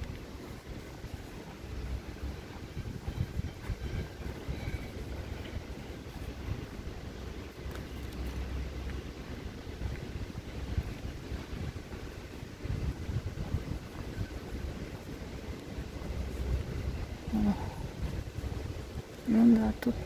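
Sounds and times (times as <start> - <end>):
distant city traffic: 0.0 - 20.0
wind rumble on microphone: 0.0 - 20.0.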